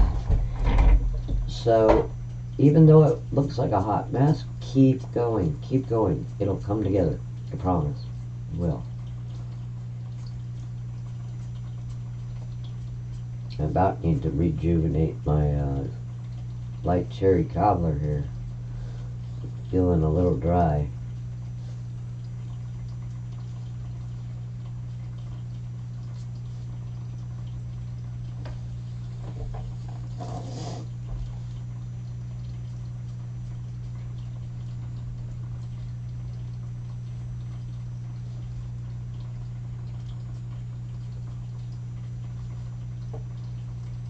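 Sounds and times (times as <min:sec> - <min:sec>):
low electrical hum: 0:00.0 - 0:44.0.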